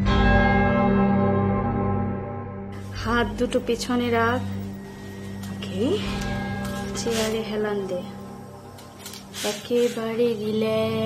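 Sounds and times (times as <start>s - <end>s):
struck bell-like tone: 0.3s - 8.7s
low held drone: 2.5s - 11.0s.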